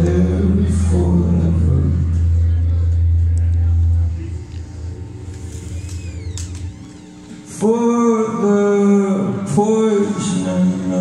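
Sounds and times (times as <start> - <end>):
rock band deep bass note: 0.0 - 9.6.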